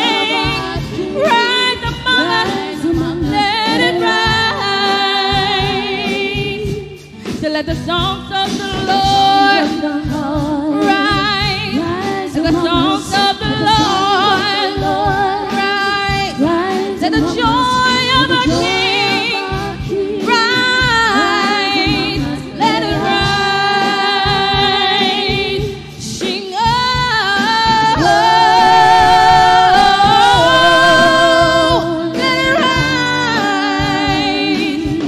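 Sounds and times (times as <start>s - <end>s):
women singing gospel: 0.0s - 35.0s.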